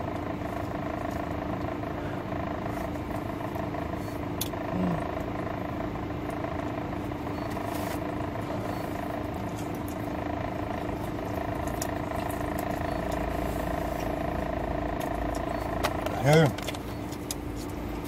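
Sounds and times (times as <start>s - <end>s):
car idling hum from inside: 0.0s - 18.0s.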